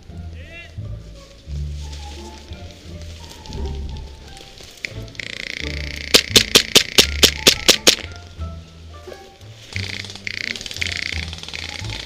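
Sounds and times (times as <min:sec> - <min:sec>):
airsoft pistol shots: 0:06.1 - 0:08.0.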